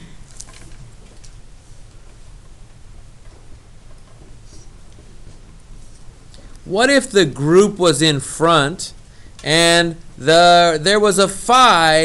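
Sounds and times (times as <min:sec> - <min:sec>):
low hum and hiss: 0:00.0 - 0:12.0.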